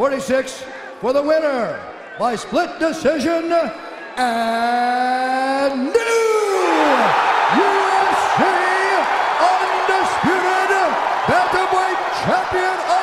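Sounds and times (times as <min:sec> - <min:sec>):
crowd cheering loudly: 0:06.0 - 0:13.0.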